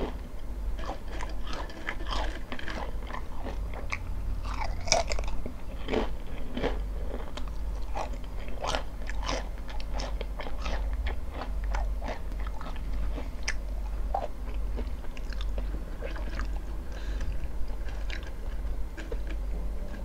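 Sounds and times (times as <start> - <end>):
crunching potato chips: 0.8 - 19.5.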